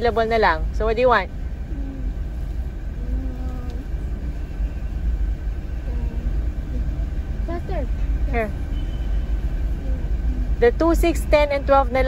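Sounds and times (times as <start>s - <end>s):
car engine idling: 0.0s - 12.0s
faint voices: 1.6s - 4.6s, 9.6s - 11.8s.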